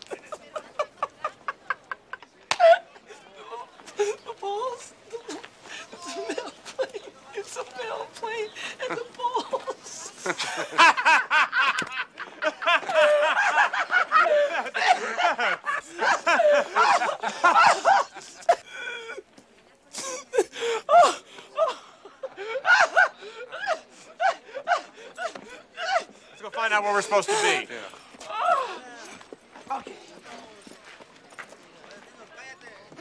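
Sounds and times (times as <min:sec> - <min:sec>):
men laughing: 0:00.0 - 0:30.5.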